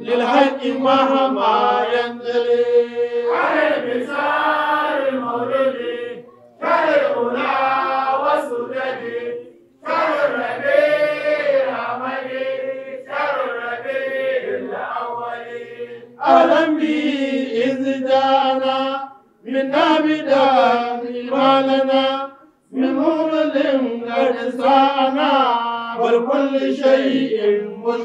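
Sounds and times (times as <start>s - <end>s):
man chanting: 16.2s - 28.0s.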